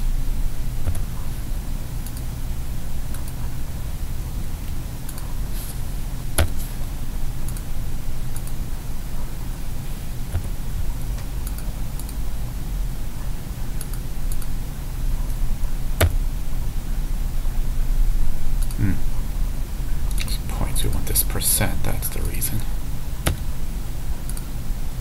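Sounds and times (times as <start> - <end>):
steady low hum: 0.0 - 25.0
computer mouse clicks: 0.8 - 1.1, 10.3 - 10.6, 23.2 - 23.5
keyboard keystrokes: 0.8 - 1.1, 10.3 - 10.6, 23.2 - 23.5.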